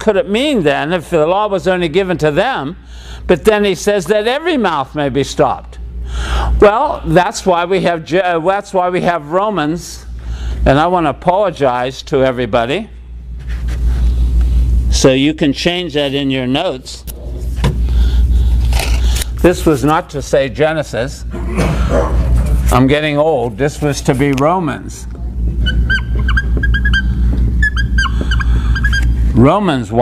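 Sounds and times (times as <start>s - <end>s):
marker squeaking on whiteboard: 25.6s - 29.2s.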